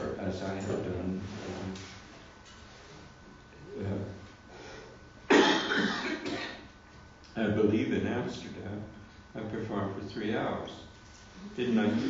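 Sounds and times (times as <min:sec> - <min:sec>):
man coughing: 0:05.3 - 0:06.7.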